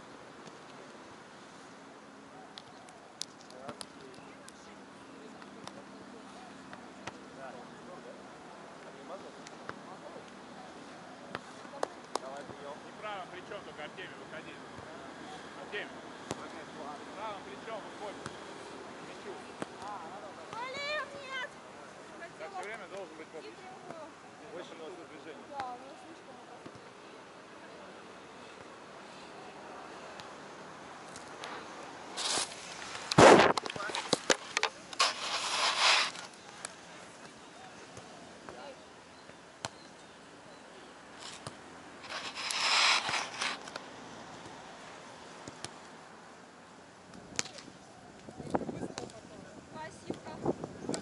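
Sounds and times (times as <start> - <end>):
steady outdoor haze: 0.0 - 51.0
hands slapping volleyball: 2.5 - 4.6, 11.3 - 12.6
feet kicking up sand: 32.2 - 36.3.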